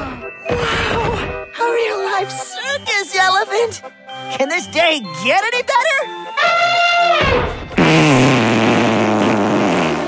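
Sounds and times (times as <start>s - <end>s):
cartoon fart sound effect: 7.1s - 10.0s.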